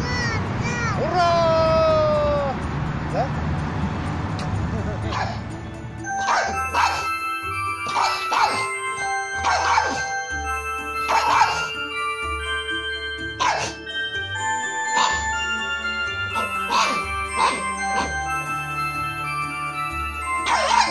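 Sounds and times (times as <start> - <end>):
background music: 0.0 - 20.9
dog barking: 6.2 - 7.1, 7.9 - 8.6, 9.4 - 10.1, 11.1 - 11.7, 13.4 - 13.8, 20.4 - 20.9.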